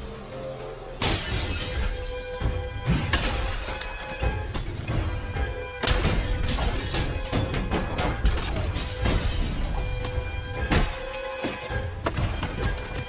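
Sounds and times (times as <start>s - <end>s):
glass shattering and crashing: 2.9s - 4.4s.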